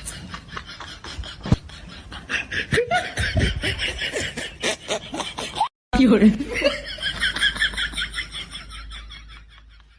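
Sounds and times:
person snickering and laughing: 0:00.0 - 0:05.7.

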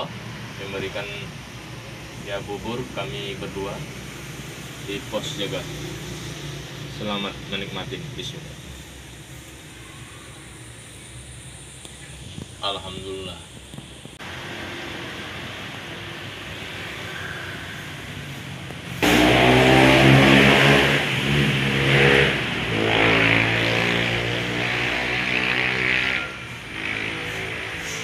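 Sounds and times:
steady background hiss: 0:00.0 - 0:28.0.

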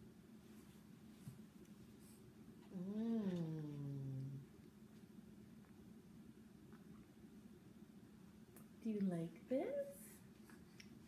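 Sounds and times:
person humming: 0:02.7 - 0:04.5.

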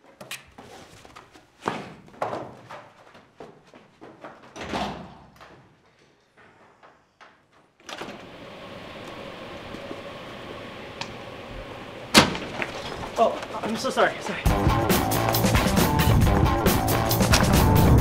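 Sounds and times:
door thud: 0:12.1 - 0:13.0.

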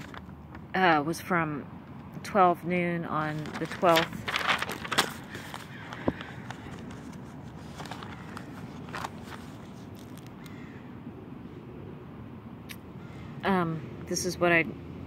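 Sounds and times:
notebook clicks and rustles: 0:00.0 - 0:00.6, 0:03.2 - 0:10.6
outdoor background rumble: 0:00.0 - 0:15.0.

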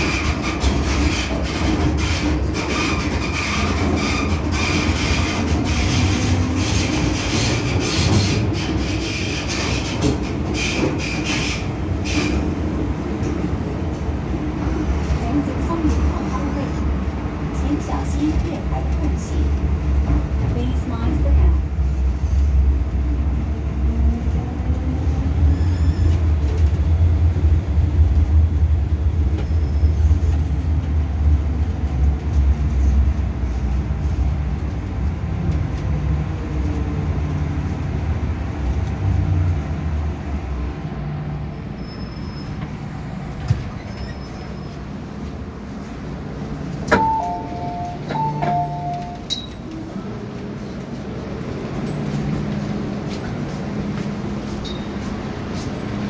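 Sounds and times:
train wheel and motor rumble: 0:00.0 - 0:56.0.

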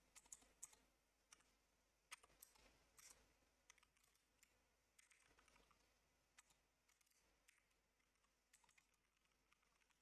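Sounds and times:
faint keyboard typing: 0:00.0 - 0:10.0.

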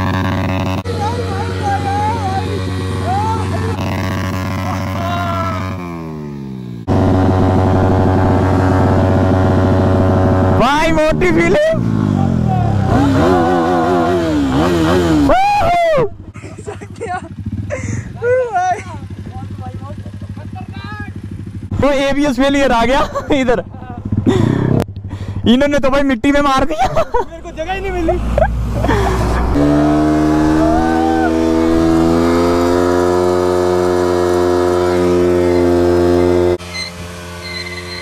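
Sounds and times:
motorcycle engine revving: 0:00.0 - 0:16.3, 0:17.0 - 0:22.8, 0:23.5 - 0:25.5, 0:27.5 - 0:38.0.

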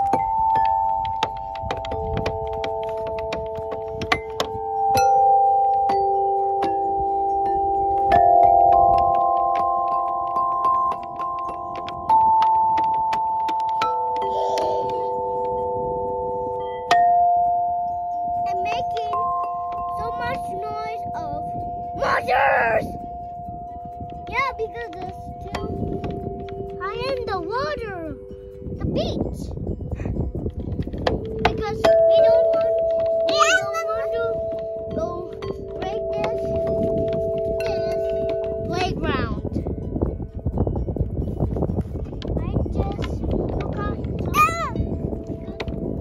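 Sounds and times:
metal tubes chiming: 0:00.0 - 0:46.0
metal xylophone struck with mallets: 0:00.0 - 0:46.0
small child's voice: 0:14.2 - 0:15.4, 0:18.4 - 0:22.9, 0:24.2 - 0:26.0, 0:26.8 - 0:28.2, 0:28.8 - 0:29.6, 0:31.4 - 0:39.5, 0:42.4 - 0:44.8.

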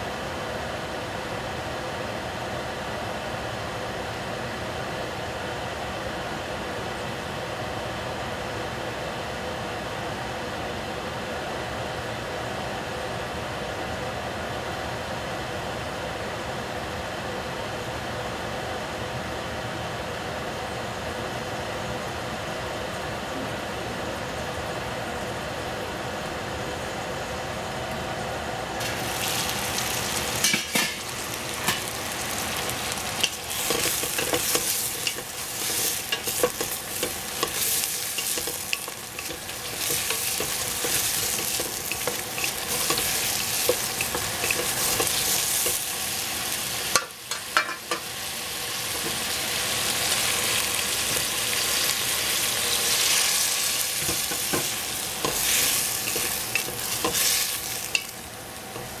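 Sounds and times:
squash sizzling in oil: 0:28.8 - 0:59.0
wooden spatula scraping a pot: 0:33.2 - 0:45.8.

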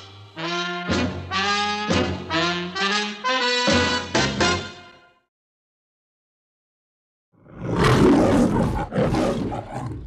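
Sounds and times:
lion roaring: 0:07.4 - 0:10.0.

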